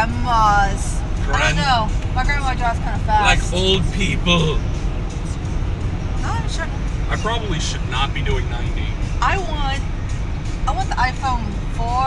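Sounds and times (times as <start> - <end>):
people talking: 0.0 - 4.6, 6.2 - 9.8, 10.7 - 12.0
car cabin road rumble: 0.0 - 12.0.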